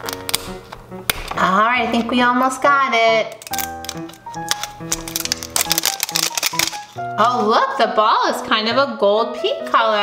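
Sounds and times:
plastic wrapper crinkling: 0.0s - 2.5s, 3.3s - 7.5s
background music with held notes: 0.0s - 10.0s.

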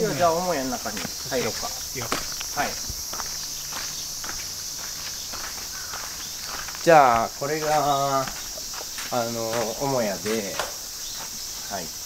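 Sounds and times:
footsteps on gravel: 0.0s - 12.0s
insects chorus: 0.0s - 12.0s.

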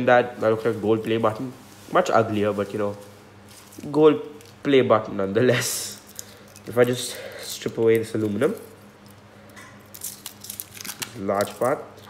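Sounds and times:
aluminium foil crinkling and tearing: 5.8s - 12.0s.

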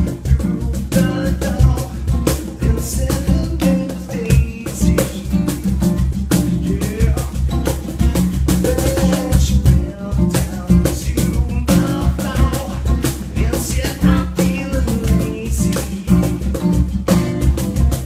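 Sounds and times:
drum kit: 0.0s - 18.0s
guitar: 0.0s - 18.0s.

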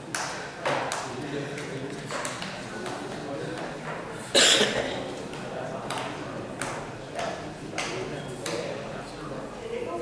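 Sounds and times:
voices echoing in a large hall: 0.0s - 10.0s.

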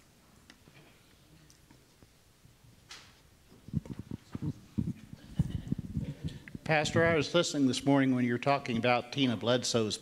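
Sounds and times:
microphone handling thumps: 3.5s - 7.3s.

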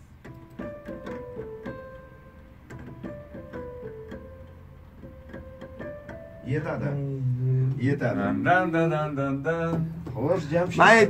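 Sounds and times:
electronic keyboard melody: 0.0s - 11.0s.

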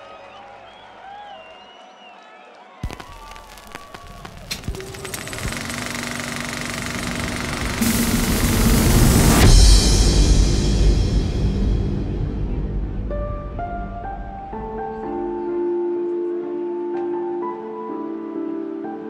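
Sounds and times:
crowd whooping and calling: 0.0s - 5.5s
electronic music: 2.9s - 10.7s
rising noise sweep: 4.2s - 10.8s
deep bass hit: 7.8s - 14.8s.

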